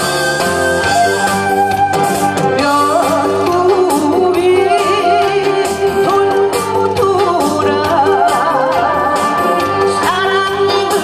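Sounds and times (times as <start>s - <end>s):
backing music with steady beat: 0.0s - 11.0s
woman singing into microphone: 2.3s - 11.0s.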